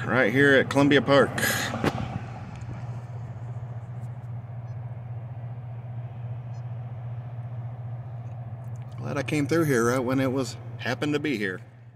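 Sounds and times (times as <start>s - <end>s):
low engine-like hum: 0.0s - 11.9s
outdoor noise: 0.0s - 11.9s.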